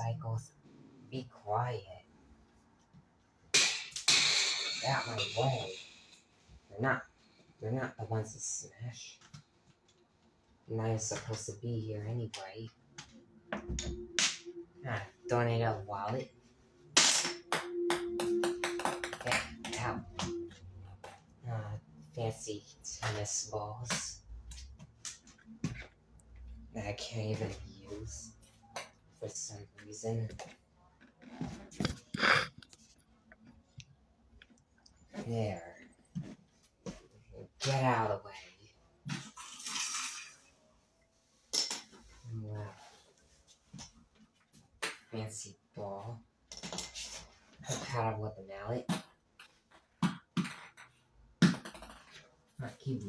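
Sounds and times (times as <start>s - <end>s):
ping-pong balls tapping on floor: 17.5s - 20.3s.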